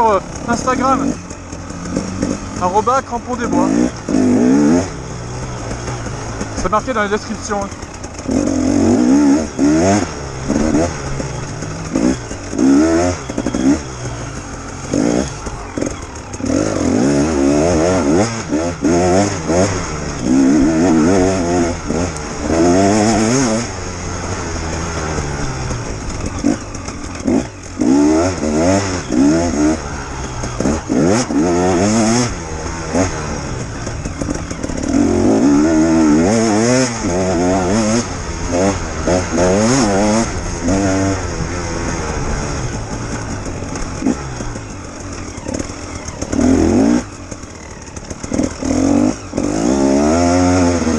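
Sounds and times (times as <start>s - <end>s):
motorcycle engine revving: 0.0s - 50.9s.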